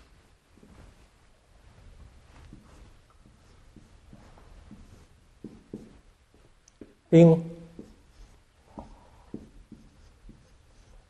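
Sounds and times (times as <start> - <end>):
marker writing on whiteboard: 2.3 - 11.0.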